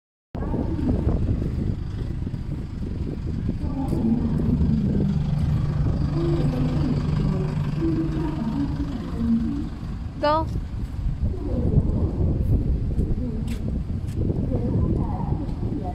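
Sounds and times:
motor vehicle engine rumble: 0.4s - 15.9s.

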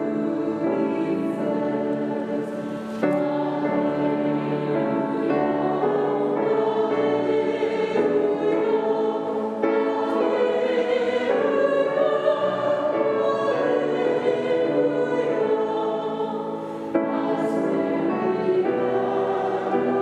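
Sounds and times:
church choir singing a hymn: 0.0s - 20.0s.

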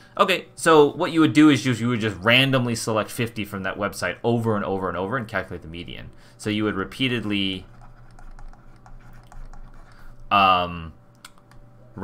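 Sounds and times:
stylus scratching on tablet: 7.1s - 10.3s.

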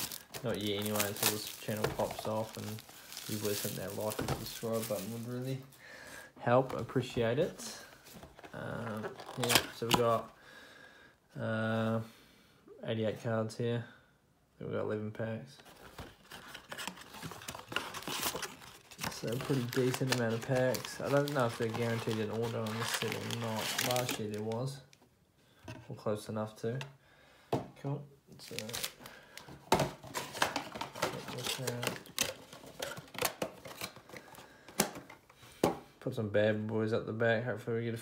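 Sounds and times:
light rustling of packs: 0.0s - 5.8s, 15.6s - 24.9s, 28.4s - 35.2s.

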